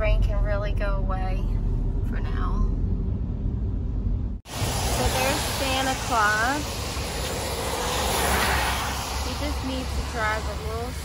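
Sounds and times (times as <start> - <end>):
car engine and road rumble: 0.0 - 11.0
tyres hissing on wet pavement: 4.5 - 11.0.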